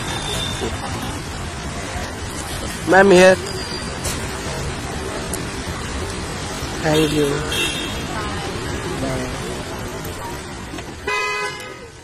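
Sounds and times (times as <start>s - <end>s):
street noise: 0.0s - 12.0s
voices: 0.0s - 12.0s
car horn honk: 11.0s - 11.9s.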